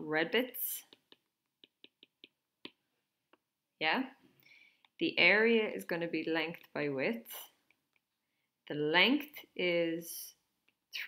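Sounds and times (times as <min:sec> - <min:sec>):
stylus tapping on tablet screen: 0:00.8 - 0:03.6.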